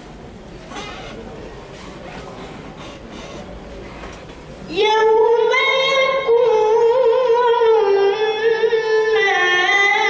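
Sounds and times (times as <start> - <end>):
sound system hum and hiss: 0.0 - 10.0
breath near microphone: 0.7 - 4.2.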